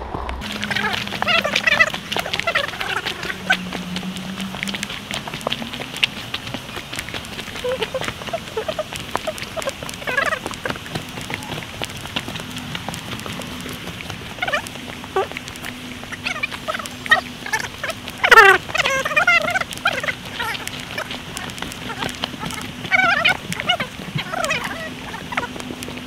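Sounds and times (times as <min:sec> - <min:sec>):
people calling out: 0:00.4 - 0:25.6
footsteps on a dirt trail: 0:00.4 - 0:26.0
warbling call: 0:00.4 - 0:26.0.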